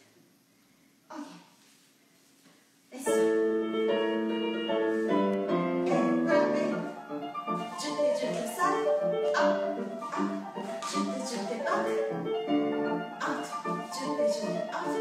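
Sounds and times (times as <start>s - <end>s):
piano music: 3.0s - 15.0s.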